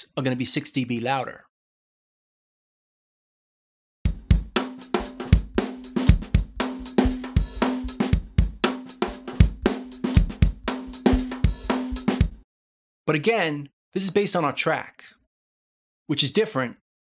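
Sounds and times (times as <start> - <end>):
drum loop playing: 4.1 - 12.4.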